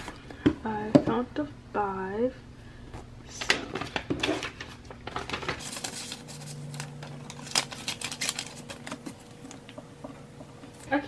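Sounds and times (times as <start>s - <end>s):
paper rustling and crinkling: 3.4s - 9.6s.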